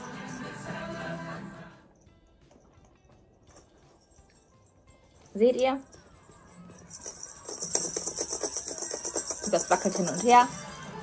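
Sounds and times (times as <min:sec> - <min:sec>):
small bell jingling: 0:00.0 - 0:01.0, 0:01.8 - 0:11.0.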